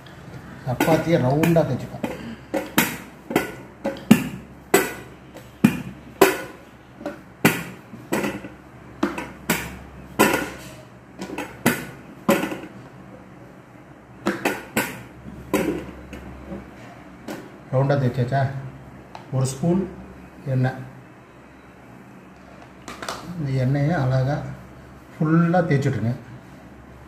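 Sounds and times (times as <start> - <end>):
rolling pin knocking on steel plate: 0.7 - 12.8.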